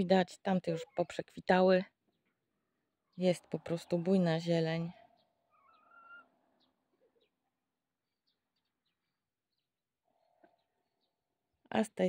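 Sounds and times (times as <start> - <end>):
high bird chirps: 3.1 - 7.4
wavering bird call: 5.1 - 6.3.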